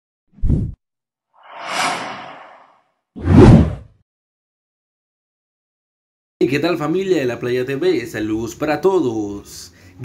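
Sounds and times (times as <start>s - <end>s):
whoosh: 1.4s - 3.8s.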